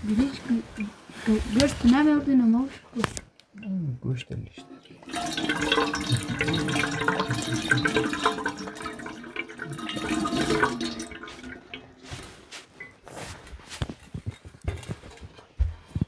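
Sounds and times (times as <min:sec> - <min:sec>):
water splashing into metal basin: 0:04.6 - 0:13.0.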